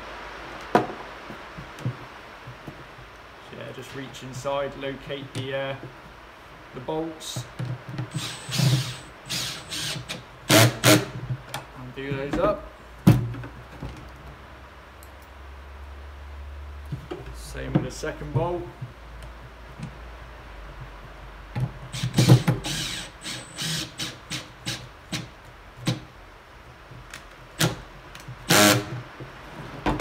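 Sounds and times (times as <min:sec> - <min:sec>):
faint room hiss: 0:00.0 - 0:30.0.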